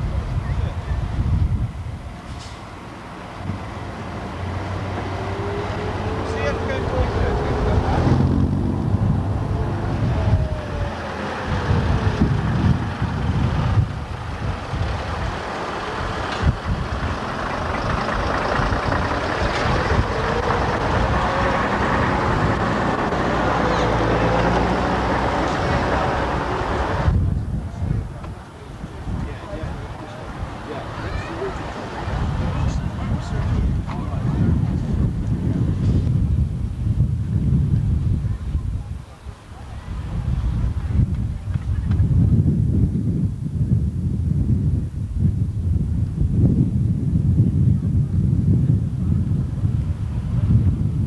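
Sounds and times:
diesel engine driving slowly: 0.0s - 51.0s.

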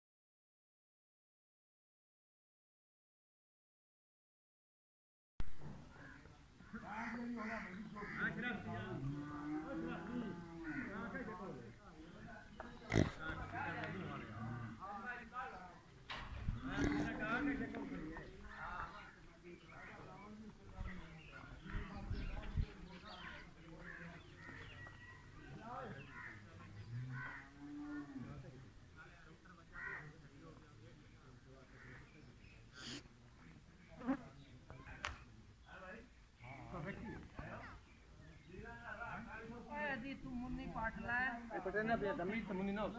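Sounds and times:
people talking: 6.0s - 15.9s, 16.6s - 27.0s.

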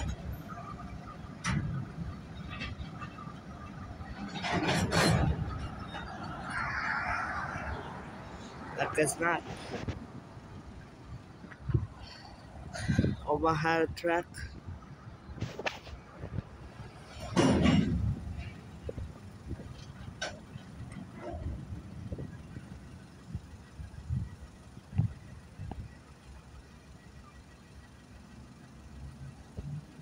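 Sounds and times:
train rumbling on rails: 0.0s - 13.3s, 14.2s - 26.8s.

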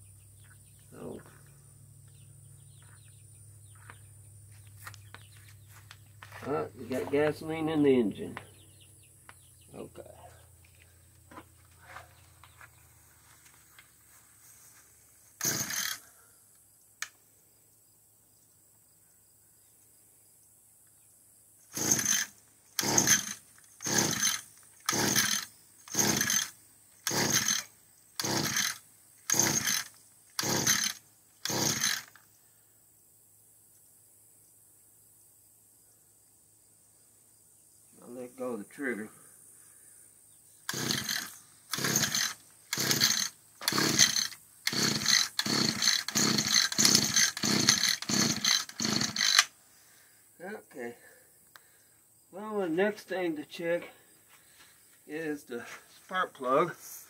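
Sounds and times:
engine turning over: 15.4s - 16.0s, 21.7s - 32.2s, 40.7s - 49.5s
recoil starter pulls: 15.4s - 16.0s, 21.7s - 32.2s, 40.7s - 49.5s.

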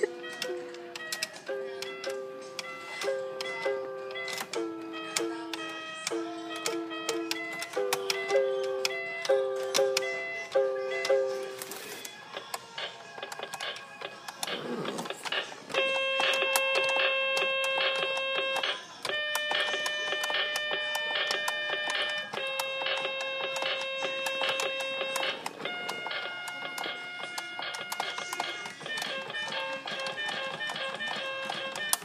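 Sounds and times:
toy keyboard long held notes: 0.0s - 32.0s.

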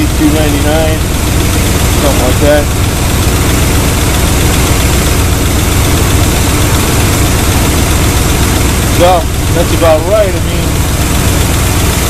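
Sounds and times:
car engine idling: 0.0s - 12.0s.

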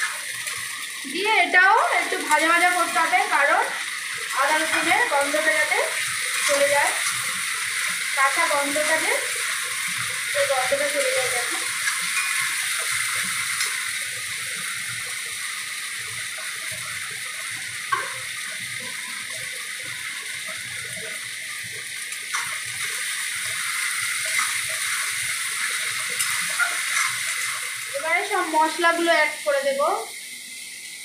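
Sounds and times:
onions sizzling in hot oil: 0.0s - 31.0s.

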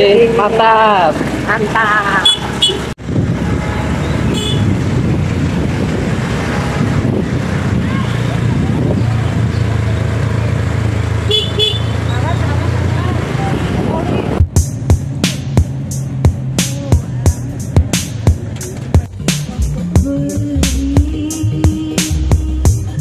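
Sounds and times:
road and wind noise: 0.0s - 23.0s
motorcycle engine running: 1.4s - 23.0s.

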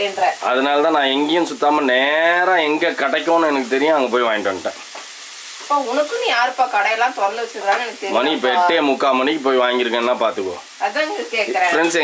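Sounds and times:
food sizzling in frying pan: 0.0s - 12.0s
woman talking: 5.7s - 8.7s, 10.8s - 12.0s.

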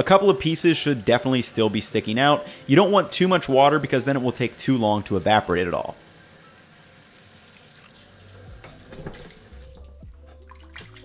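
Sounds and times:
tap water pouring into metal pot: 6.7s - 11.0s.

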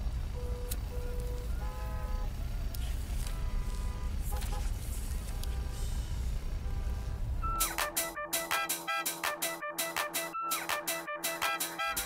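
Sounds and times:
sharp instrumental stabs: 7.4s - 12.0s.

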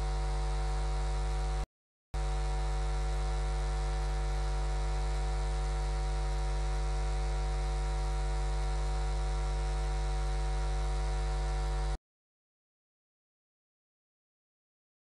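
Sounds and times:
electrical mains hum: 0.0s - 1.6s, 2.2s - 12.0s.

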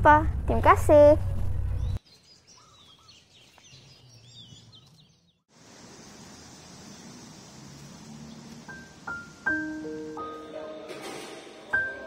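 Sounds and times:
small birds chirping: 1.4s - 10.8s
faint outdoor hiss: 5.0s - 11.9s.

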